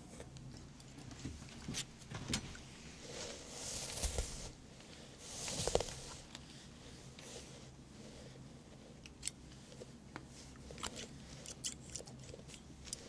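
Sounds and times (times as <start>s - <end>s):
hair rustling swishes: 2.8s - 4.6s.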